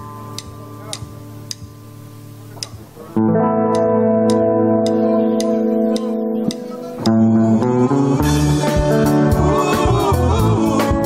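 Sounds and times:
electric guitars and bass chord: 0.0 - 11.0
sharp timing ticks: 0.4 - 1.7, 2.6 - 2.8, 3.7 - 7.2.

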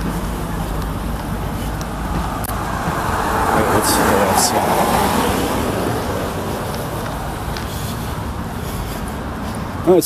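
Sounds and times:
highway traffic rushing: 0.0 - 10.0.

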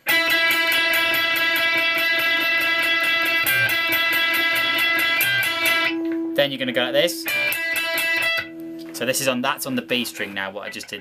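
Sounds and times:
electric guitar picking: 0.0 - 11.0.

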